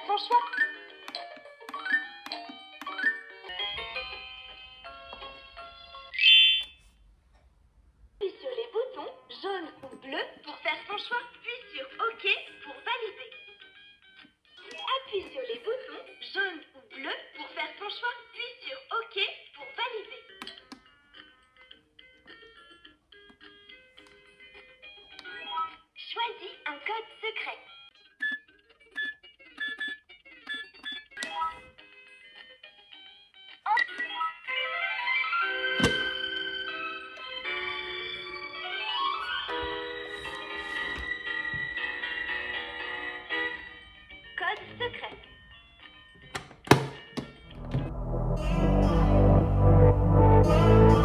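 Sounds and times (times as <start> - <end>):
plastic lid clacking shut: 46.4 - 47.4
faint electronic tune: 47.4 - 51.0.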